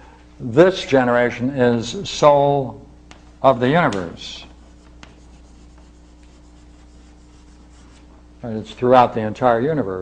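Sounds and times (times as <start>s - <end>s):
low electrical hum: 0.0s - 10.0s
chalk scratching on chalkboard: 4.5s - 8.1s.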